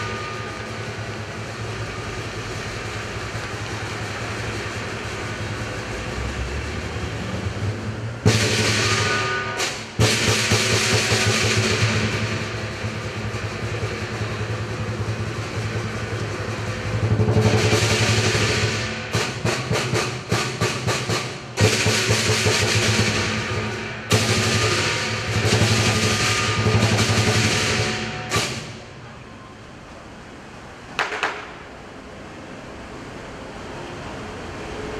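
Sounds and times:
gong: 0.0 - 3.3, 8.2 - 28.9
big drum beating: 0.0 - 6.0, 6.6 - 28.9
cymbals clashing: 0.0 - 6.1, 8.2 - 29.0.

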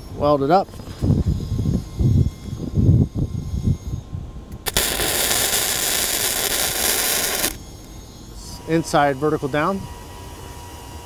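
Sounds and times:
wind buffeting microphone: 0.8 - 7.0
welding arc crackling: 4.6 - 7.6.

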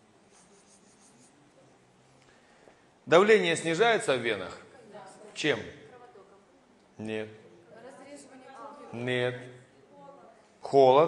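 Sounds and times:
felt-tip marker on paper: 0.3 - 1.4.

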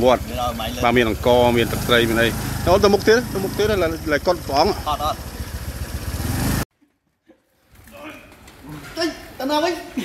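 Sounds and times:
man talking: 0.0 - 5.2
scooter engine idling: 0.0 - 6.6.

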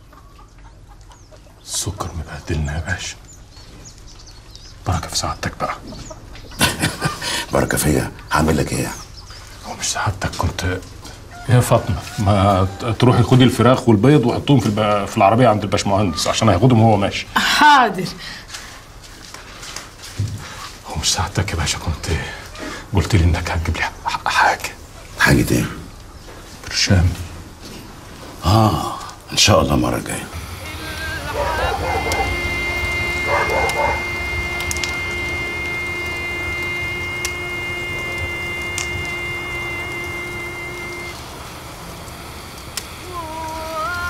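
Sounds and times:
animal sounds: 0.0 - 17.0, 21.9 - 23.2, 28.3 - 37.3
background noise: 0.0 - 31.7
hissing background: 1.5 - 19.1, 19.9 - 44.0
held high and low tones: 30.0 - 44.0
low voice: 30.4 - 32.2, 43.0 - 44.0.

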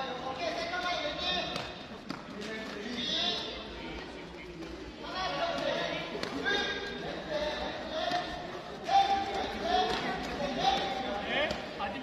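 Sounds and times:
crowd chattering and calling out: 0.0 - 12.0.

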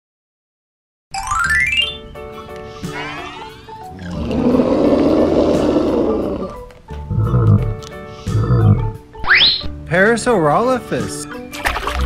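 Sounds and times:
dinosaur roar: 2.8 - 9.0.

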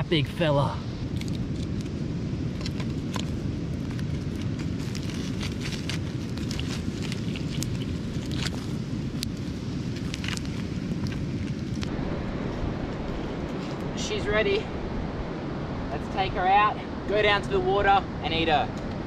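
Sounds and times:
wind rumble on microphone: 0.0 - 19.0
fire crackling and popping: 1.0 - 14.1.

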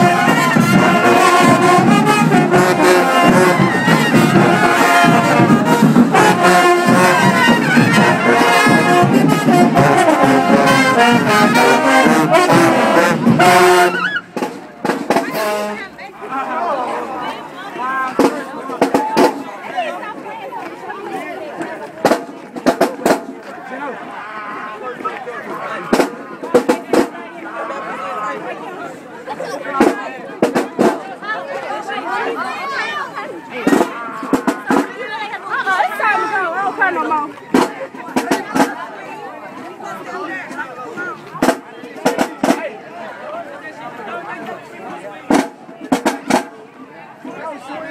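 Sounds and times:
marching band brass note: 0.0 - 16.2, 33.6 - 34.9
crowd chatter: 0.0 - 47.9.

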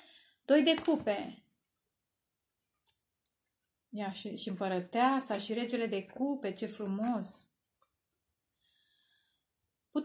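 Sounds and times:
woman's voice: 0.5 - 1.4, 3.9 - 7.6.

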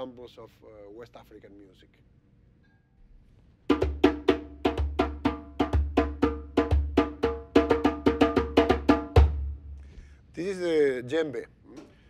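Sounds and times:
djembe hand drumming: 3.7 - 9.6.

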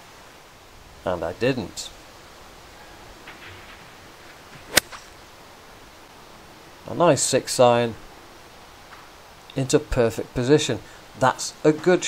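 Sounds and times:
golf swing swish: 4.2 - 5.2
golf club hitting ball: 4.6 - 5.2.

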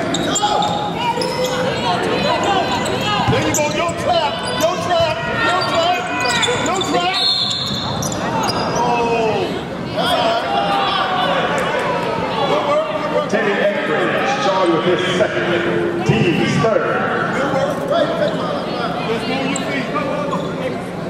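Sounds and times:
people talking and calling: 0.0 - 21.0.

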